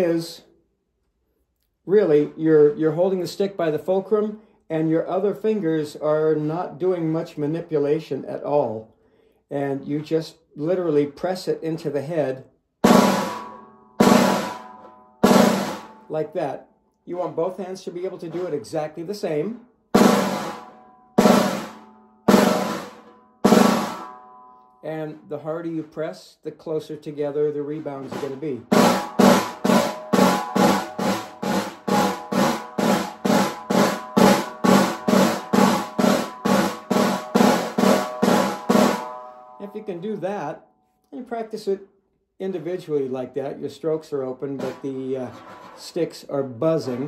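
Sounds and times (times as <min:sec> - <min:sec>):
snare drum buzz strokes: 0:28.1 - 0:39.1.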